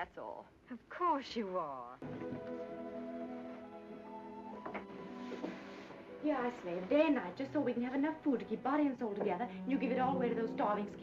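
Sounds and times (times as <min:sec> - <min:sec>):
soft orchestral music: 0:02.0 - 0:11.0.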